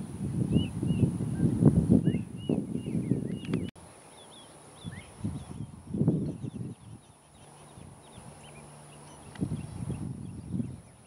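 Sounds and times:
wind buffeting microphone: 0.0s - 3.8s, 4.8s - 11.0s
small bird chirping: 0.3s - 11.0s.

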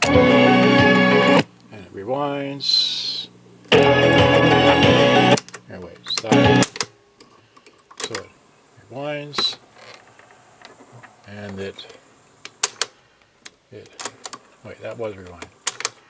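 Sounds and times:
burst of music from tape: 0.0s - 1.5s, 3.7s - 5.4s, 6.2s - 6.8s.

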